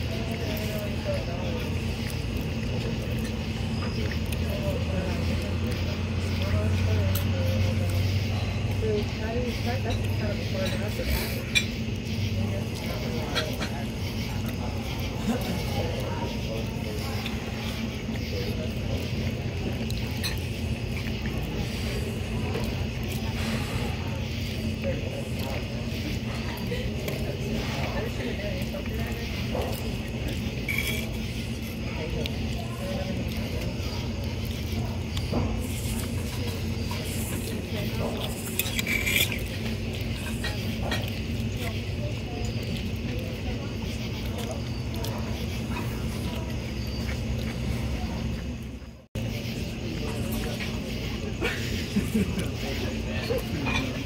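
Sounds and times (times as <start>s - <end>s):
murmur of voices: 0.0s - 54.0s
steady low hum: 0.0s - 54.0s
fork clinking against plate: 38.1s - 41.2s.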